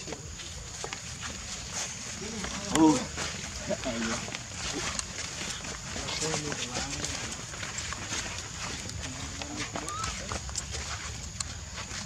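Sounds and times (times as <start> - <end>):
light clicks and rustles: 0.1 - 12.0.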